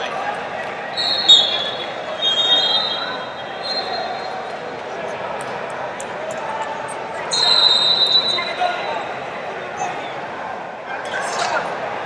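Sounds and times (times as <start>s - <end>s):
babble of voices echoing: 0.0s - 12.0s.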